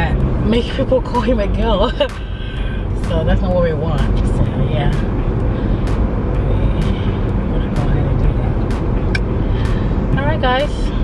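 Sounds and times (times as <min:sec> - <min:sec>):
road and engine rumble: 0:00.0 - 0:11.0
sharp ticks: 0:00.1 - 0:10.7.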